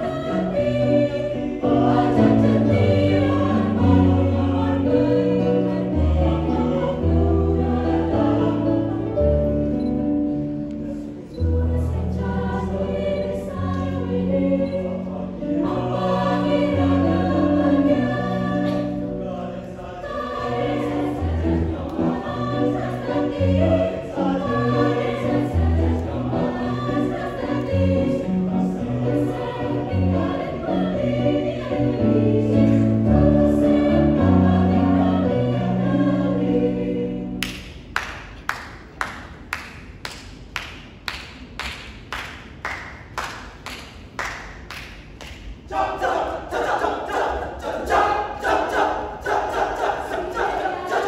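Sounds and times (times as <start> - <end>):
mixed choir singing: 0.0 - 37.5, 45.7 - 51.0
sharp hand claps: 37.4 - 45.6.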